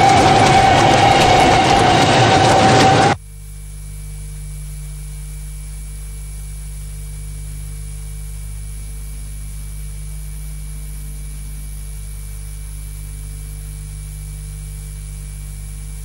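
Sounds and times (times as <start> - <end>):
electrical mains hum: 2.9 - 16.0.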